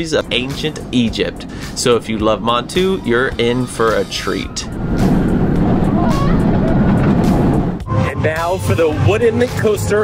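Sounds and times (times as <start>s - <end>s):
roller coaster rush and rumble: 0.0s - 7.8s
background music: 0.0s - 10.0s.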